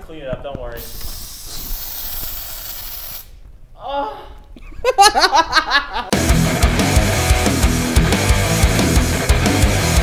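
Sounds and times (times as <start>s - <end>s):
aerosol can spraying hiss: 0.8s - 3.3s.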